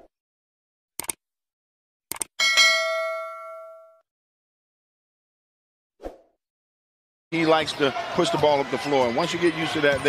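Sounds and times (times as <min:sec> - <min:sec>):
notification bell ding: 0:02.4 - 0:04.0.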